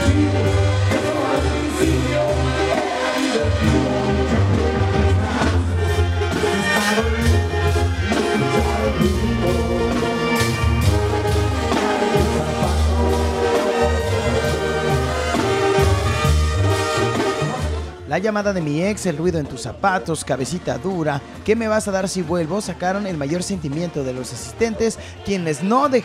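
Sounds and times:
man singing: 0.0 - 4.9, 8.0 - 15.8
brass band playing: 0.0 - 26.0
deep pulsing bass line: 3.4 - 18.0.

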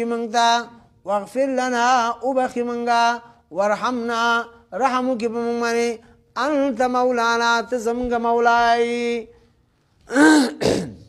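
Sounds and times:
man clearing his throat: 10.1 - 11.0.

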